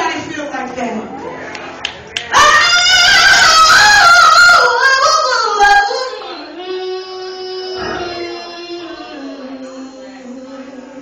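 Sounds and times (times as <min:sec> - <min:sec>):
woman singing gospel run: 0:02.3 - 0:11.0.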